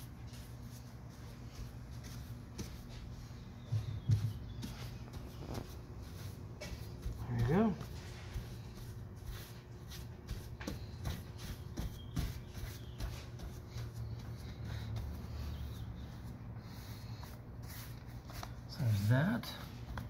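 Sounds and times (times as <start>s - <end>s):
brush scratching on glass: 4.5s - 19.7s.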